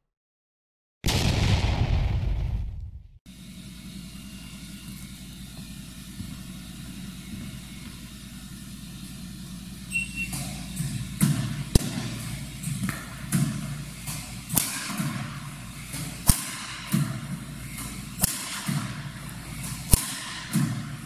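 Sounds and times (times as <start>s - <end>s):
racket strings striking shuttlecock: 14.1s - 15.2s, 16.2s - 16.7s.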